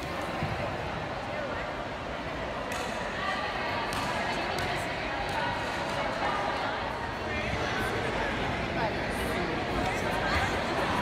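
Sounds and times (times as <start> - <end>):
chatter of children and adults: 0.0 - 11.0.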